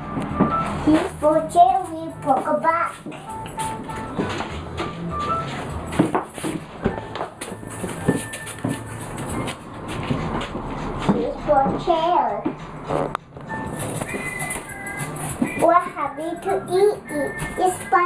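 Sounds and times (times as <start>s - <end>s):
background music: 0.0s - 18.0s
young child's voice: 0.8s - 3.2s, 11.1s - 12.6s, 15.6s - 18.0s.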